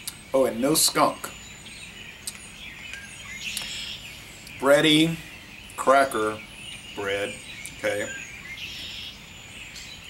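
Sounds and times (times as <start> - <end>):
birds chirping faintly: 0.0 - 10.0
low outdoor hum: 0.0 - 10.0.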